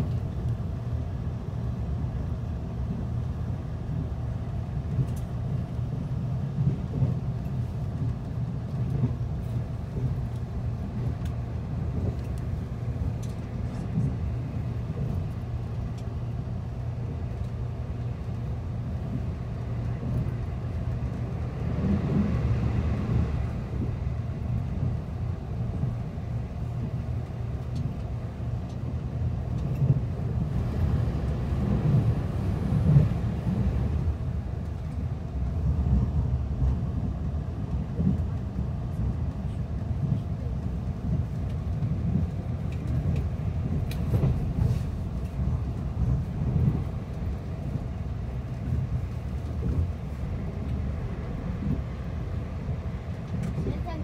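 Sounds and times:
electric train rumbling at speed: 0:00.0 - 0:54.0.

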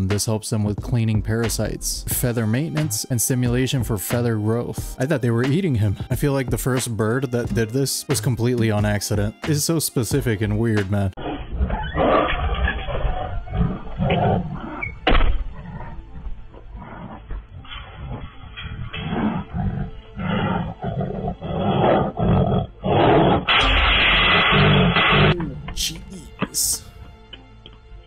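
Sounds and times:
tiger roaring: 0:11.2 - 0:25.8.

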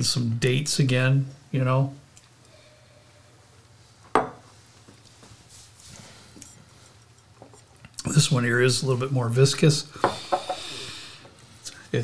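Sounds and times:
glass knocking on wooden bar: 0:04.1 - 0:04.4
glassware clinking: 0:04.1 - 0:04.4, 0:10.0 - 0:10.7.

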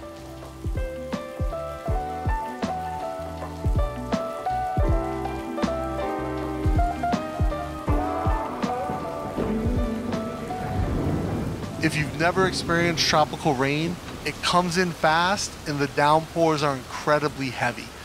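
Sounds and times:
music with steady low beat: 0:00.0 - 0:11.8
heavy rain on pavement: 0:00.0 - 0:18.0.

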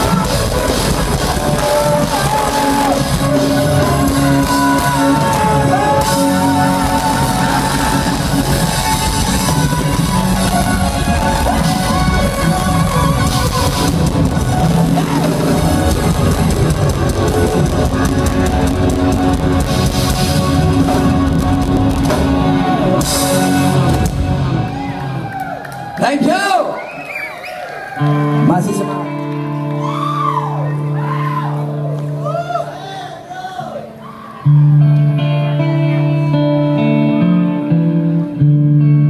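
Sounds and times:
drum kit: 0:00.0 - 0:25.4
bass guitar: 0:00.0 - 0:26.0, 0:27.9 - 0:32.8, 0:33.7 - 0:39.0
electric guitars: 0:00.0 - 0:26.0, 0:27.6 - 0:39.0.

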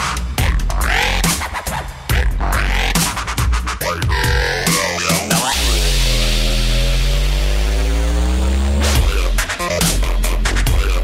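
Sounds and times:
dubstep synth bass note: 0:03.8 - 0:11.0.

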